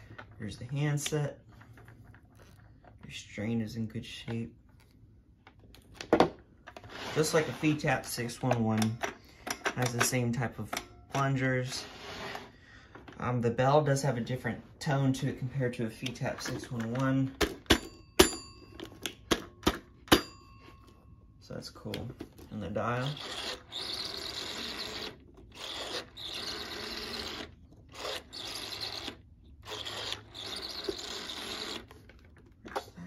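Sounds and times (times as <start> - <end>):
telephone bell dings: 17.8 - 19.1, 20.1 - 21.3.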